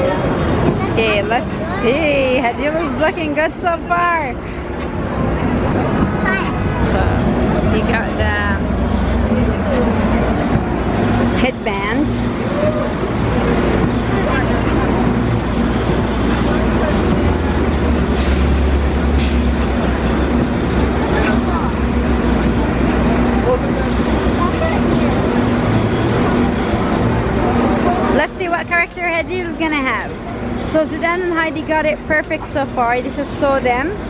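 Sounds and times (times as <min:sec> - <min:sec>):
city street noise: 0:00.0 - 0:34.0
large vehicle engine idling: 0:00.0 - 0:34.0.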